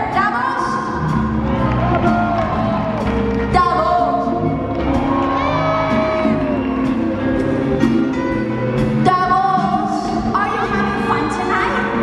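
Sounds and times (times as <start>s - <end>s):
live pop band: 0.0s - 12.0s.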